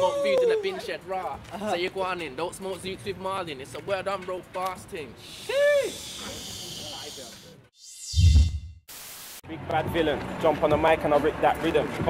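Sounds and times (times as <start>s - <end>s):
street ambience hiss: 0.0s - 7.7s, 8.9s - 12.0s
short electronic swoosh: 7.8s - 9.4s.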